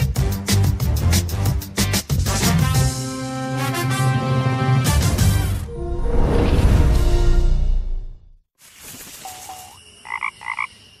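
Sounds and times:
frog croaks: 0:09.2 - 0:11.0.

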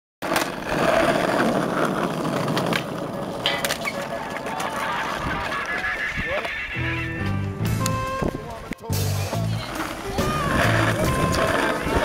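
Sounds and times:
skateboard clacking on ground: 0:00.2 - 0:12.0
skateboard wheels rolling on concrete: 0:00.2 - 0:12.0.

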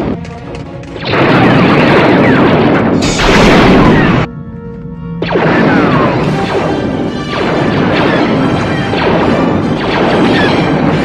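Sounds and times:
battle soundtrack music: 0:00.0 - 0:11.0
blaster shots zapping: 0:01.0 - 0:04.3, 0:05.2 - 0:11.0.

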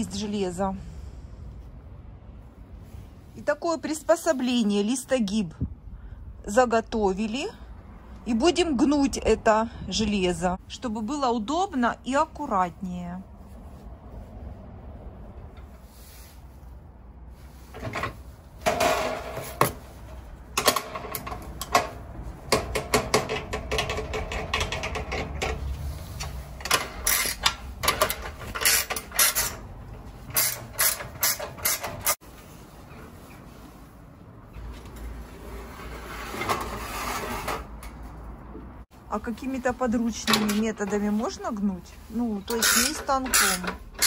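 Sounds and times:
metallic clanks and knocks: 0:20.6 - 0:25.7.

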